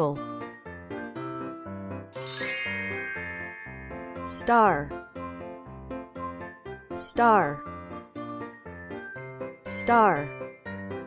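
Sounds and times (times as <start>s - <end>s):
simple children's background music: 0.0s - 11.0s
bright sparkly chime sweeping upward: 2.2s - 4.7s.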